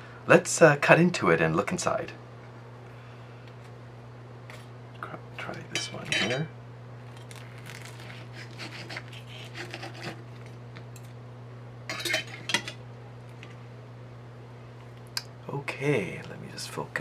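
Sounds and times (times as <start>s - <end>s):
knife and fork cutting pastry: 7.7s - 10.5s
cutlery scraping on plate: 11.9s - 12.8s.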